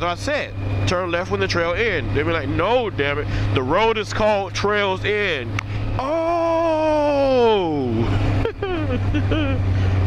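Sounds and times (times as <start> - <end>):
motorcycle engine drone: 0.0 - 10.0
man laughing: 6.0 - 10.0.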